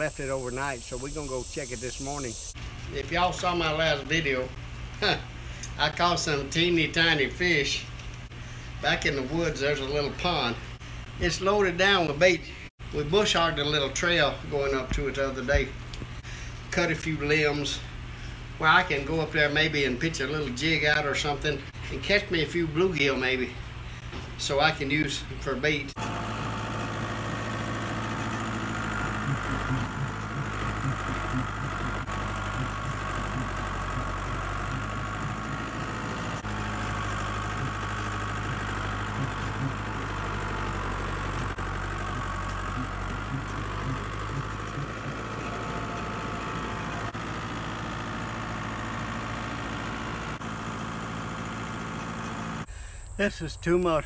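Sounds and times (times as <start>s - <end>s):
tractor engine running: 0.0s - 53.0s.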